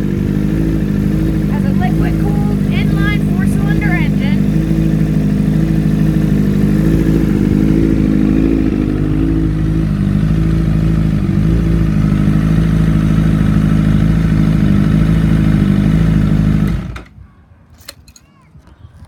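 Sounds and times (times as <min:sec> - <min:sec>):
motorcycle engine idling: 0:00.0 - 0:17.2.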